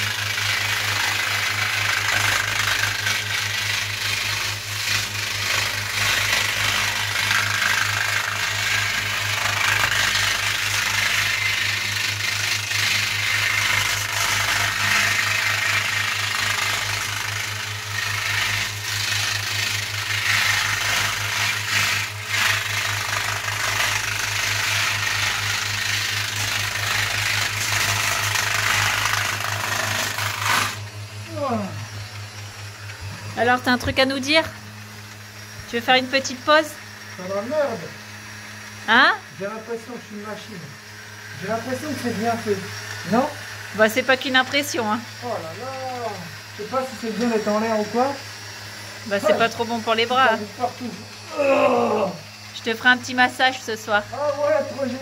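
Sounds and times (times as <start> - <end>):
angle grinder sanding foam: 0.0 - 55.0.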